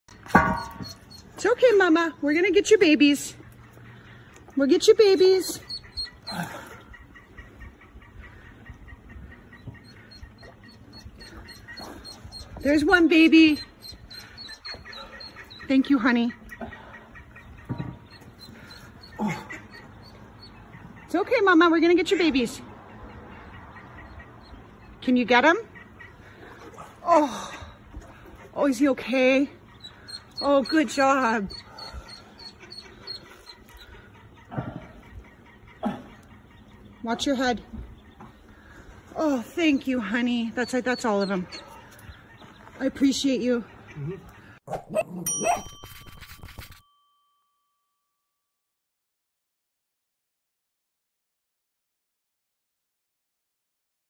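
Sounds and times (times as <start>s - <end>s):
ducklings peeping: 0.3s - 44.6s.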